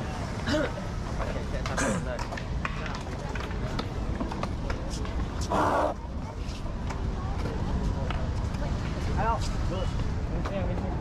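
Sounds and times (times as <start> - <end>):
people chattering: 0.0 - 11.0
skateboards clacking on concrete: 0.0 - 11.0.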